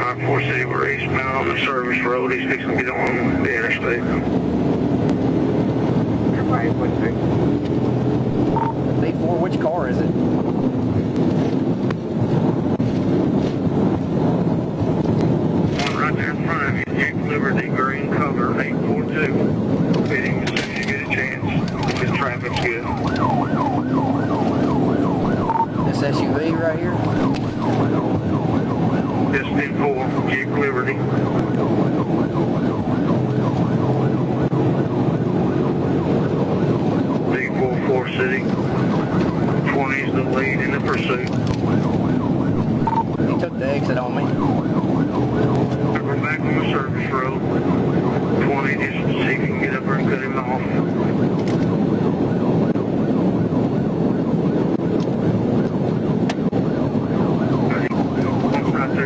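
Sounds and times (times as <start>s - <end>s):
car engine and road noise: 0.0s - 59.0s
siren wailing: 0.0s - 59.0s.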